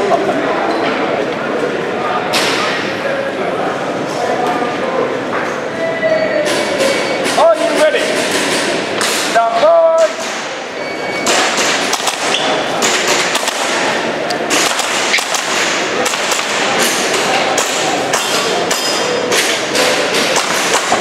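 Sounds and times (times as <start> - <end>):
airsoft pistol shots: 11.2 - 16.9.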